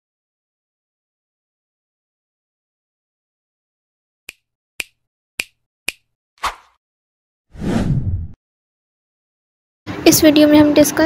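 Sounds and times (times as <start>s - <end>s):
finger snaps: 4.3s - 6.1s.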